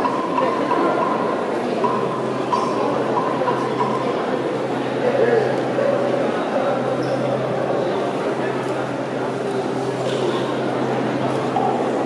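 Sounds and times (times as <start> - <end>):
crowded hall background noise: 0.0 - 12.0.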